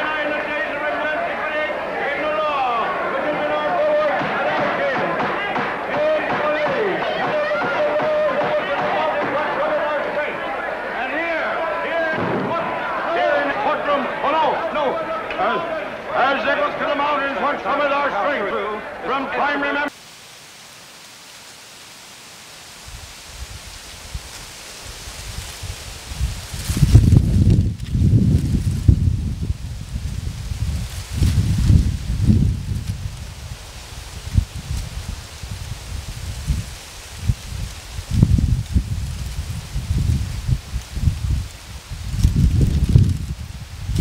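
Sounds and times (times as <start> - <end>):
faint steady hiss: 0.0 - 44.0
wind buffeting microphone: 22.8 - 44.0.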